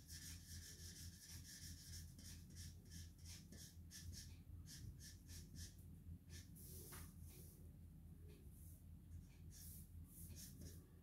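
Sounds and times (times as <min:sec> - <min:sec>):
marker rubbing on paper: 0:00.0 - 0:07.0, 0:09.5 - 0:10.8
low steady hum: 0:00.0 - 0:11.0.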